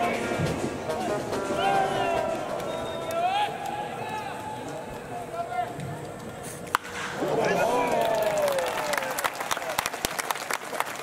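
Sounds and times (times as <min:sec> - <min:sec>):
murmur of stadium crowd: 0:00.0 - 0:11.0.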